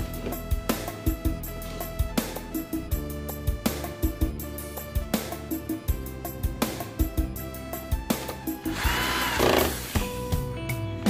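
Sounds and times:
background guitar music: 0:00.0 - 0:11.0
electric screwdriver whirring: 0:08.7 - 0:10.1.

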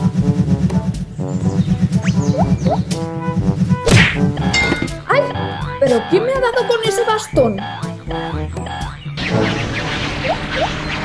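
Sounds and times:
cartoon whack: 0:03.9 - 0:05.0
electronic music with steady beat: 0:04.2 - 0:09.0.

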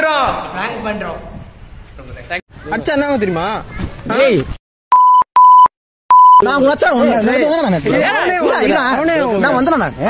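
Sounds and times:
censor bleeps: 0:04.9 - 0:06.5.

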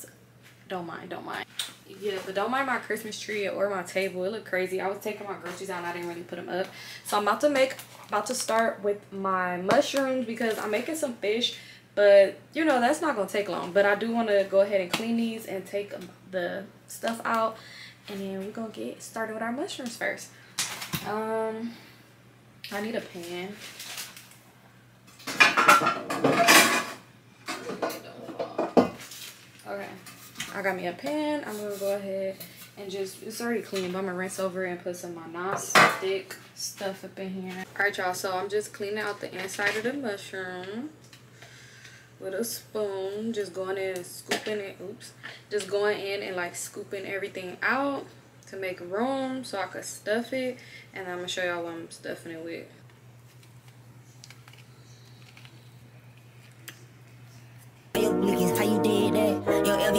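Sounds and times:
pots and pans clattering: 0:25.2 - 0:29.0
loud music: 0:58.0 - 0:59.9.

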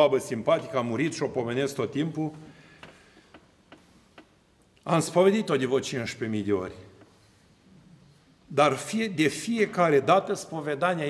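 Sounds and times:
man speaking: 0:00.0 - 0:02.5, 0:04.8 - 0:07.0, 0:08.5 - 0:11.0.

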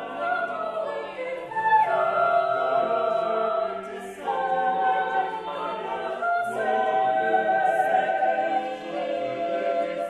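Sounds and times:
unaccompanied choir singing: 0:00.0 - 0:10.0.

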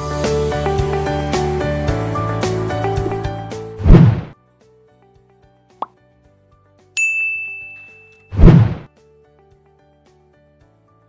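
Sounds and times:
rushing whoosh: 0:03.8 - 0:04.3
short pop: 0:03.8 - 0:04.3, 0:08.4 - 0:08.9
bright ding: 0:07.0 - 0:08.4.

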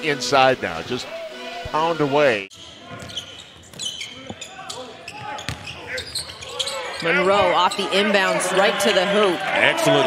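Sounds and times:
shoe squeaks: 0:02.5 - 0:08.0
basketball bouncing: 0:05.4 - 0:05.7.

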